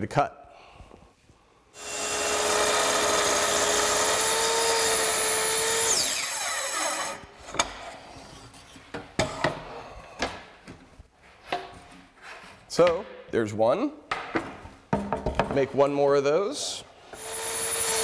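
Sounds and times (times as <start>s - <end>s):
saw blade winding down: 1.8s - 7.2s, 17.2s - 18.0s
track saw cutting a board: 1.8s - 7.2s, 17.2s - 18.0s.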